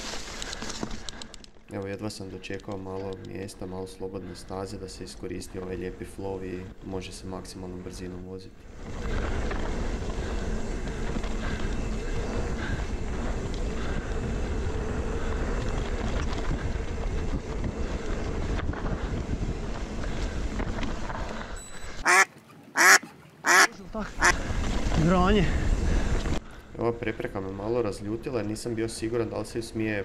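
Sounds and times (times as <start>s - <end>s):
bike tyres on dirt: 0.0s - 3.5s, 4.5s - 30.0s.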